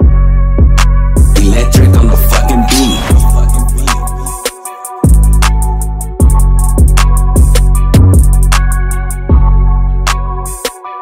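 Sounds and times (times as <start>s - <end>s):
sustained bass notes: 0.0s - 4.4s
hi-hats: 1.1s - 9.3s
repeating melody: 1.2s - 7.7s.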